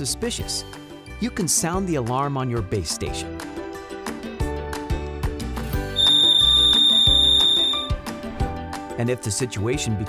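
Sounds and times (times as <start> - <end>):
background music with a beat: 3.3 - 9.0
high-pitched siren tone: 6.0 - 7.9.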